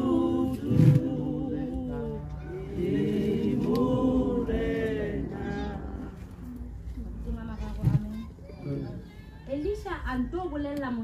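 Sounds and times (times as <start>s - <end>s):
group singing a hymn: 0.0s - 6.6s.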